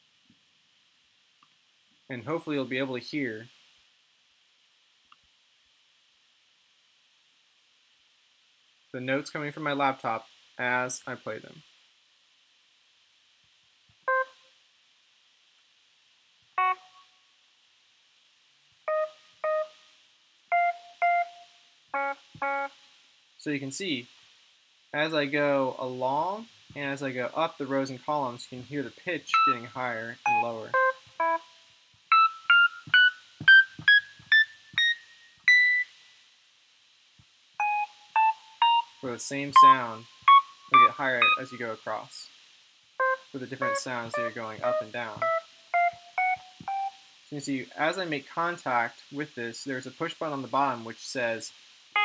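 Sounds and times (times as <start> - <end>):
electric piano notes: 43.0 - 46.9.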